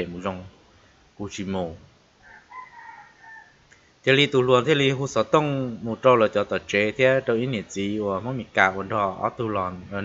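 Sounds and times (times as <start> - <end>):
rooster crowing: 2.2 - 3.7.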